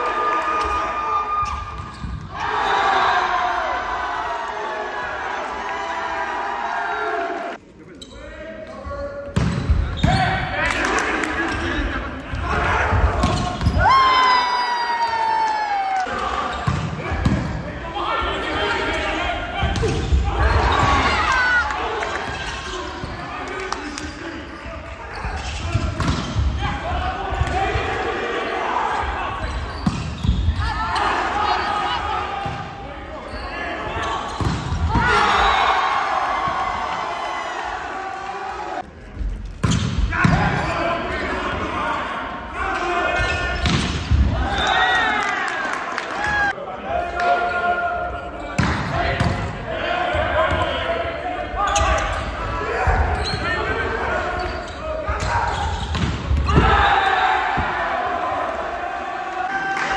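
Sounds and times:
crowd cheering: 0.0s - 7.6s, 10.4s - 24.0s, 33.6s - 38.9s, 40.1s - 47.8s, 49.0s - 59.9s
players and spectators shouting: 0.0s - 7.6s, 9.9s - 38.9s, 40.0s - 59.9s.

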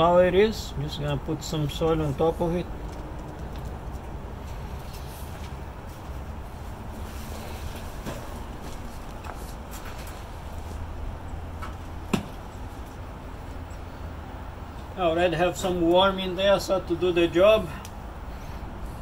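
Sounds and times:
low outdoor rumble: 0.0s - 19.0s.

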